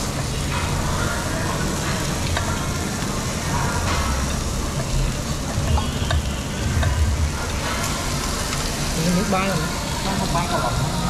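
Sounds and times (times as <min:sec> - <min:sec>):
beef sizzling on grill: 0:00.0 - 0:11.0
low rumble: 0:03.6 - 0:09.0.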